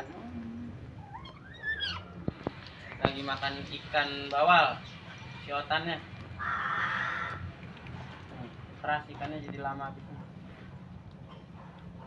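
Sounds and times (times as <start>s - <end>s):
otter squeaky call: 1.0s - 2.1s.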